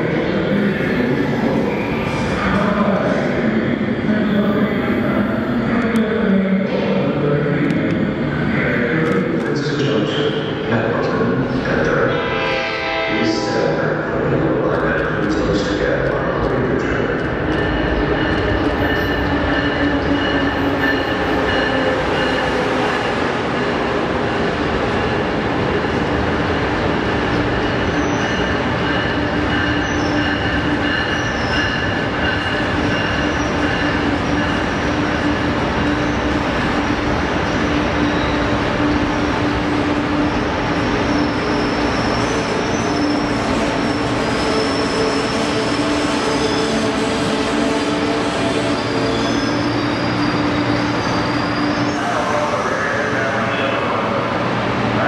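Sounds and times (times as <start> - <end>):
train wheels on rails: 14.2 - 52.2.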